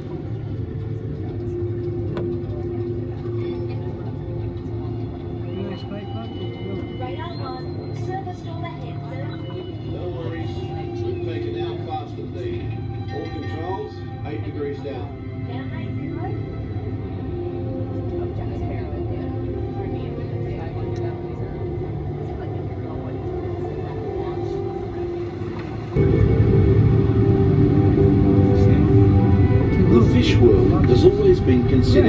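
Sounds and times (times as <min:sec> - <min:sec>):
music with wavering tones: 0:00.0 - 0:32.0
steady low hum: 0:00.0 - 0:32.0
voices murmuring: 0:00.2 - 0:26.1.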